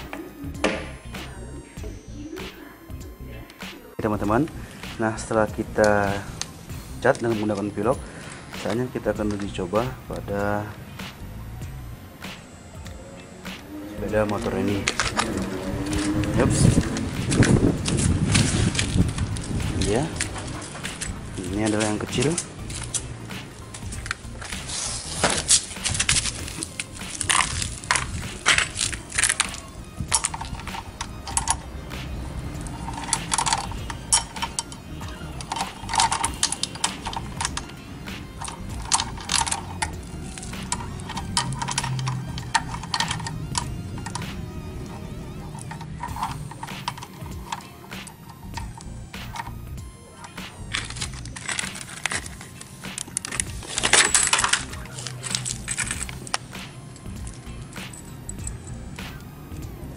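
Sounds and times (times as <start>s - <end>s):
background music: 0.0s - 59.9s
metal chain clinking: 13.7s - 59.7s.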